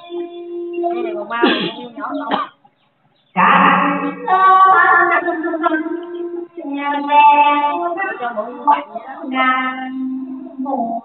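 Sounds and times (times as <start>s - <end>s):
music: 0.0s - 1.3s, 3.4s - 11.0s
person singing: 0.0s - 2.3s, 3.4s - 11.0s.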